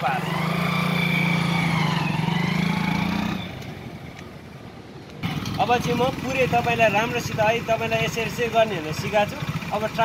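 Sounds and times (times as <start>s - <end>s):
motorcycle pulling away: 0.0s - 4.1s, 5.2s - 10.0s.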